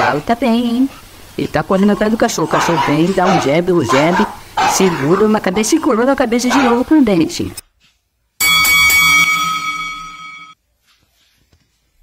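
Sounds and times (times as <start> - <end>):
boxing ring bell ringing: 8.4 - 10.6.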